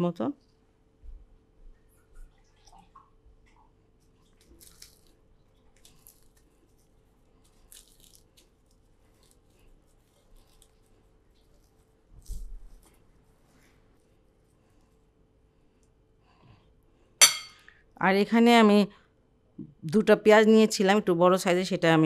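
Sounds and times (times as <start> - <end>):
dried chilies crackling: 4.4 - 13.7.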